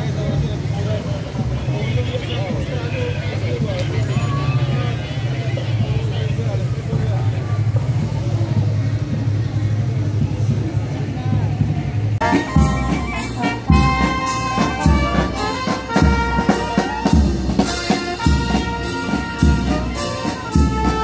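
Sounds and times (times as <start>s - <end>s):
low motorcycle engine rumble: 0.0s - 16.3s
crowd chatter: 0.0s - 21.0s.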